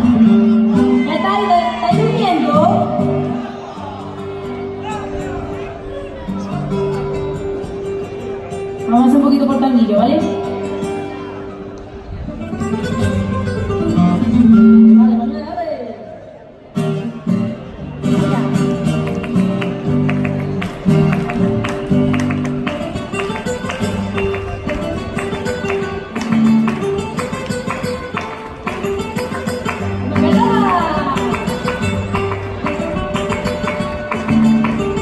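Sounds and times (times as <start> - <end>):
flamenco guitar strumming: 0.0 - 15.7, 16.6 - 35.0
woman singing flamenco: 30.1 - 31.7.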